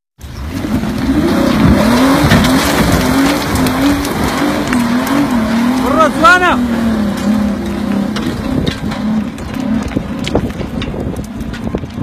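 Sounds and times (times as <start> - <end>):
steady noisy rush: 0.2 - 12.0
engine revving hard: 0.5 - 10.5.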